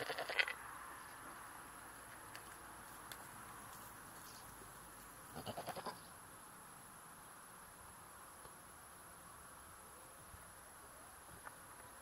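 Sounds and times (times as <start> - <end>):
goat bleating: 0.0 - 0.5, 5.3 - 6.0.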